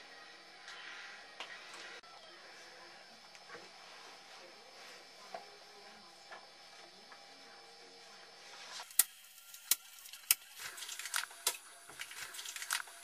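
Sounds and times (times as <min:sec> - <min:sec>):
paper money crackling and rustling: 0:09.5 - 0:13.0.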